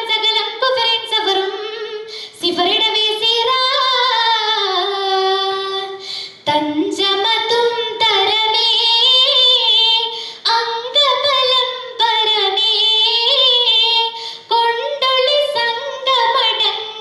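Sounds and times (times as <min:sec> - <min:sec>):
girl singing into a microphone: 0:00.0 - 0:17.0.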